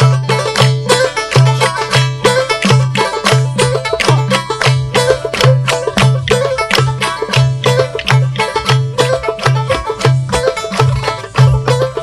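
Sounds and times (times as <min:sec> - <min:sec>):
folk dance music on long-necked lute: 0:00.0 - 0:12.0.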